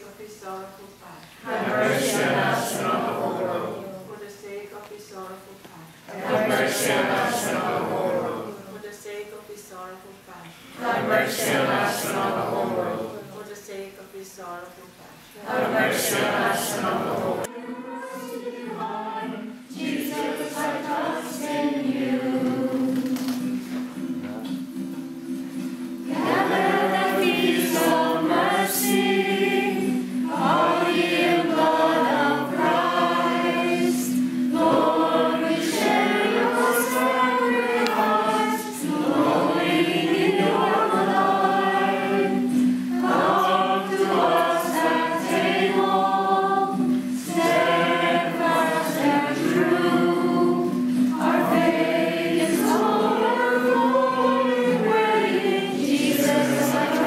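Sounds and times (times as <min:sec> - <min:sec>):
congregation singing: 0:00.0 - 0:57.0.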